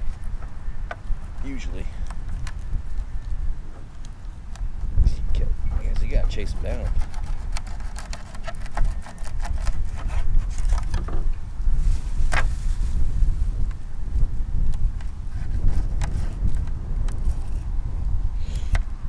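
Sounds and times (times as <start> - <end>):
wind rumble on microphone: 0.0 - 19.0
knives scraping fish: 6.0 - 10.9.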